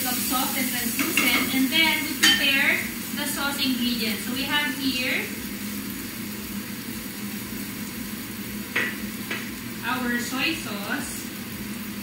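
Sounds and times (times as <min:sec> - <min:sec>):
onions sizzling in oil: 0:00.0 - 0:12.0.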